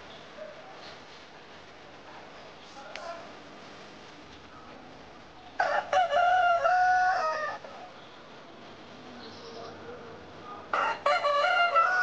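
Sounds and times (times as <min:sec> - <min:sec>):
rooster crowing: 0:05.6 - 0:07.7, 0:10.7 - 0:12.0.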